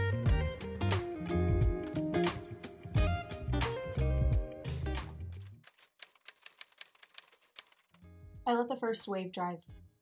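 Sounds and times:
background music: 0:00.0 - 0:05.6
typewriter key clicks: 0:05.6 - 0:08.0.

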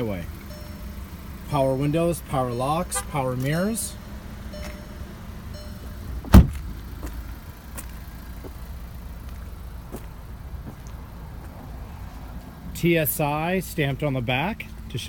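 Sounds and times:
steady low rumble: 0:00.0 - 0:14.4
car door slamming: 0:06.1 - 0:06.8.

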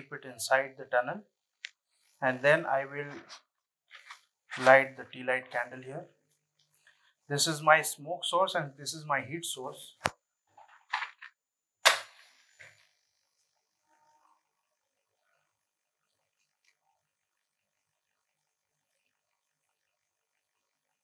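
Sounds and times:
small scratch: 0:03.0 - 0:04.9.

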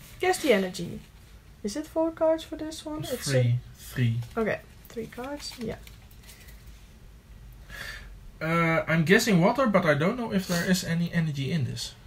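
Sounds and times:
low steady hum: 0:00.0 - 0:12.0
soft breath: 0:07.6 - 0:08.2.

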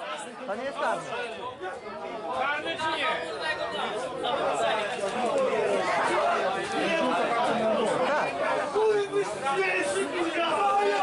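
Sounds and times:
crowd voices talking and calling out: 0:00.0 - 0:11.0.

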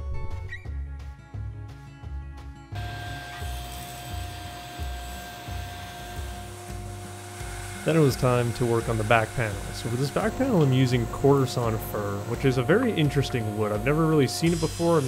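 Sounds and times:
background music with low beat: 0:00.0 - 0:15.0
steady hum: 0:06.6 - 0:15.0.

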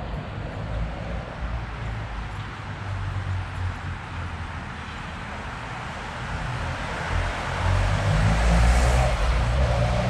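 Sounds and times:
cars driving past: 0:00.0 - 0:10.0.

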